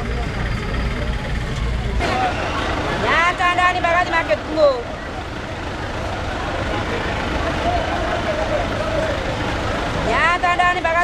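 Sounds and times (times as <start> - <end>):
indistinct voices: 0.0 - 11.0
traffic engine rumble: 0.0 - 11.0.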